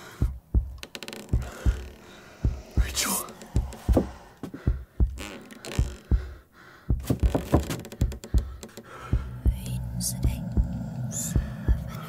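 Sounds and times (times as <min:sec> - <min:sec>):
heartbeat double thumps: 0:00.0 - 0:12.0.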